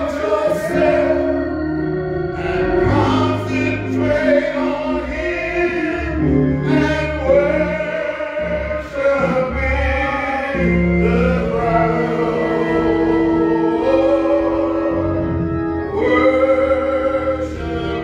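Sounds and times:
sustained organ chords: 0.0 - 18.0
man singing into a microphone: 2.4 - 15.0.

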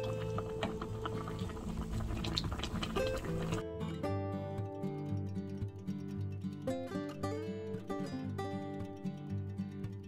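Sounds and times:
stew bubbling in a pan: 0.0 - 3.6.

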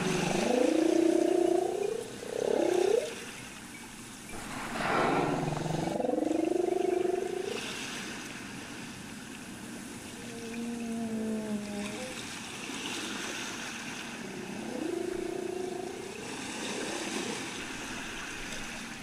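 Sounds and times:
humpback whale moaning calls: 10.2 - 12.2, 14.2 - 16.4.

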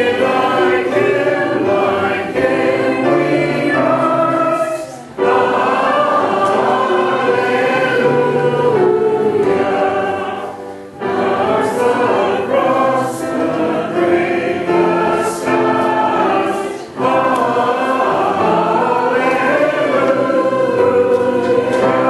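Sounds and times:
choir singing: 0.0 - 22.0.

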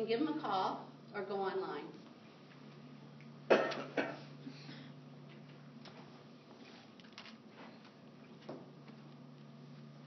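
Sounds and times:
person coughing: 3.5 - 4.3.

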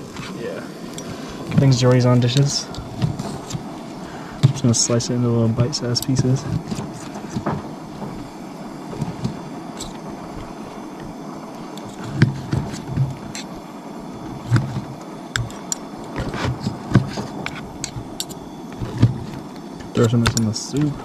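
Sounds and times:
steady background noise: 0.0 - 21.0.

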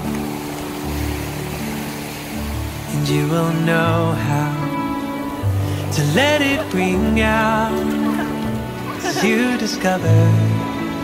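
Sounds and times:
gentle pop instrumental: 0.0 - 11.0.

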